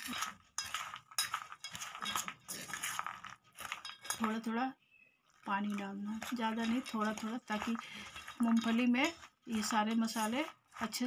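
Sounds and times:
metal spoon scraping steel bowl: 0.0s - 4.6s, 5.3s - 11.0s.

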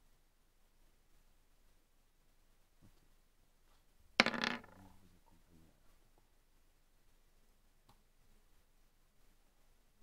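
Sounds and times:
dice clattering on table: 4.2s - 4.9s.

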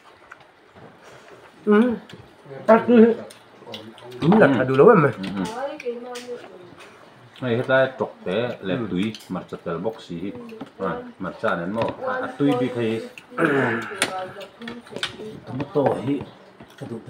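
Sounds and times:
men talking: 1.6s - 5.5s.

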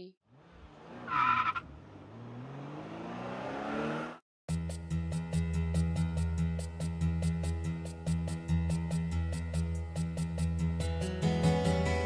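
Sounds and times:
car engine accelerating: 0.2s - 4.2s.

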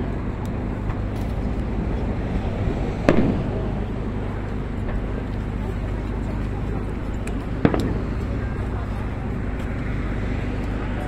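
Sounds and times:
background murmur: 0.0s - 11.0s
low hum: 0.0s - 11.0s
firework bang: 2.5s - 5.1s, 7.6s - 8.3s.

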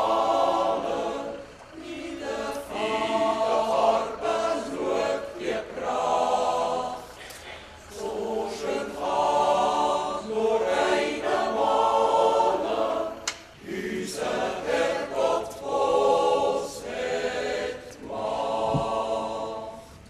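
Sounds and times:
choir singing held chords: 0.0s - 20.0s.

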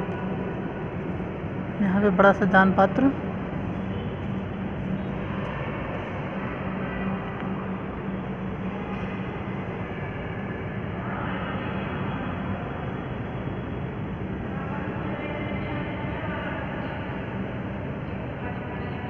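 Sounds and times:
steady rushing noise: 0.0s - 19.0s.

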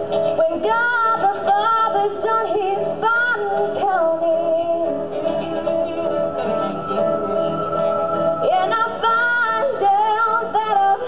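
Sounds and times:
backing music: 0.0s - 11.0s
girl singing into microphone: 0.2s - 6.2s, 8.4s - 11.0s.

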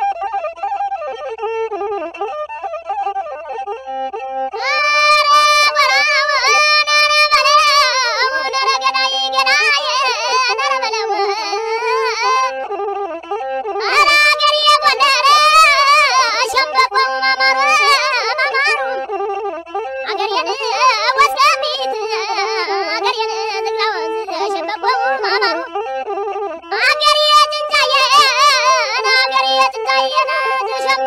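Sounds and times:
ornamented traditional melody: 0.0s - 31.0s.

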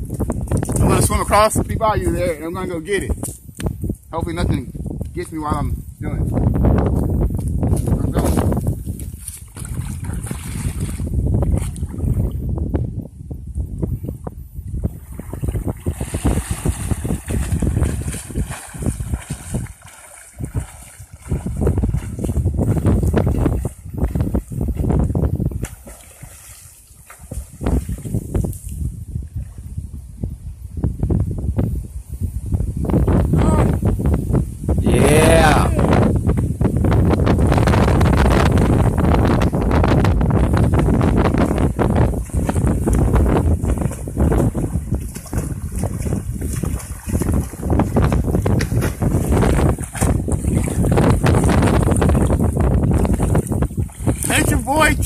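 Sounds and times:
wind buffeting microphone: 0.0s - 55.0s
water splashing: 8.1s - 12.4s, 14.7s - 29.6s, 37.3s - 55.0s.

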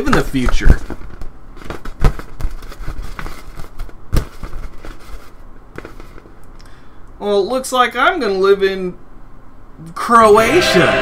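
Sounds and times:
crinkly rubbing: 0.1s - 6.4s.

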